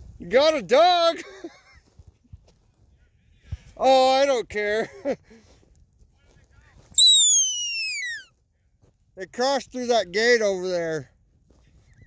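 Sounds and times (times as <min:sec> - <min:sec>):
long whistle sliding down in pitch: 0:07.0 - 0:08.2.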